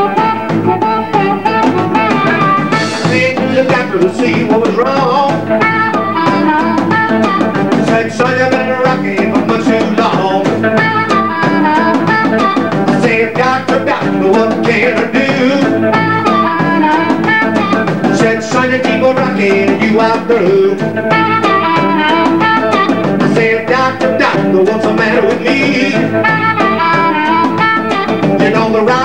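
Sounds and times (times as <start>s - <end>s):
amplified harmonica solo: 0.0s - 29.0s
drums: 0.0s - 29.0s
electric guitar: 0.0s - 29.0s.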